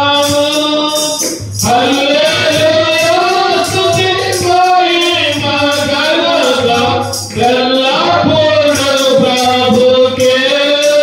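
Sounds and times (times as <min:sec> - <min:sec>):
men singing worship song: 0:00.0 - 0:11.0
percussion: 0:00.0 - 0:11.0.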